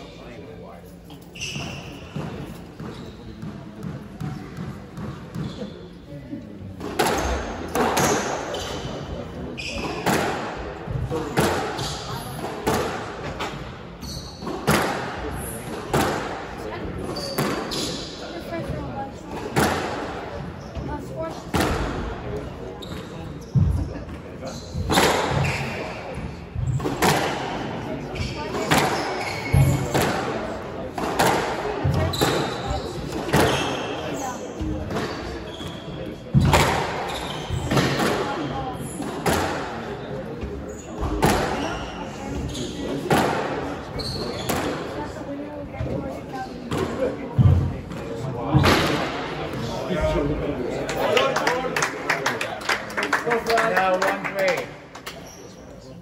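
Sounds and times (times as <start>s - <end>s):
squash ball struck by rackets: 6.8s - 8.4s, 9.9s - 10.5s, 11.2s - 13.2s, 14.4s - 15.2s, 15.9s - 16.4s, 17.3s - 17.8s, 19.3s - 20.1s, 26.6s - 27.6s, 28.5s - 33.6s, 36.3s - 37.0s, 39.0s - 39.8s, 43.0s - 43.6s.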